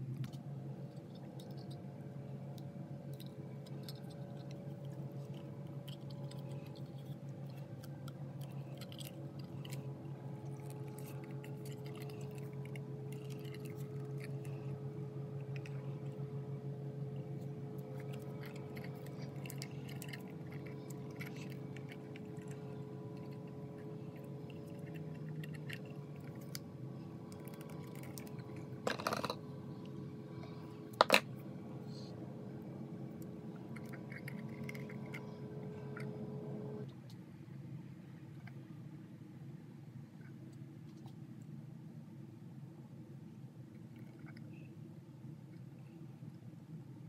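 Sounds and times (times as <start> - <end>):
steady low hum: 0.0 - 47.0.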